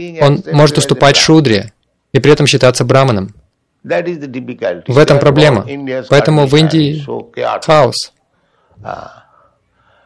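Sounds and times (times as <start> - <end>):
person speaking: 0.0 - 8.2
soft intake of breath: 8.4 - 10.0.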